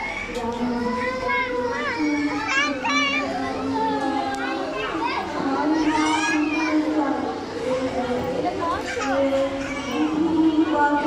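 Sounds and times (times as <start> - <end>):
children chattering: 0.0 - 11.0
woman singing into microphone: 0.2 - 2.5, 5.4 - 11.0.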